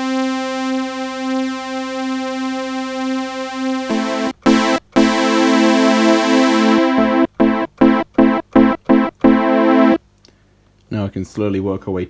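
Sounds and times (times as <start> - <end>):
synthesizer sawtooth note wavering: 3.8 - 10.0.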